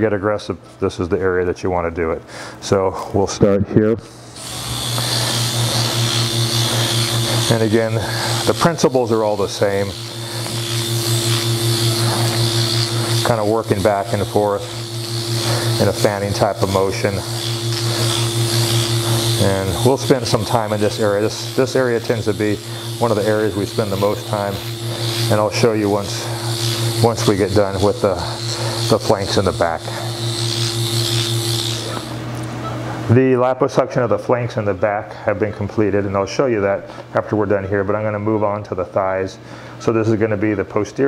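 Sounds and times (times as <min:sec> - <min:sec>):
pulsing motor hum: 0:04.1 - 0:33.1
steady high tone: 0:04.4 - 0:32.2.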